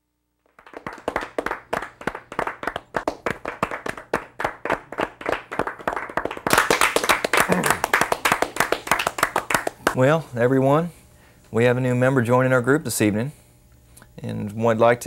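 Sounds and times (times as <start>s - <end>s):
people clapping: 0.4s - 10.0s.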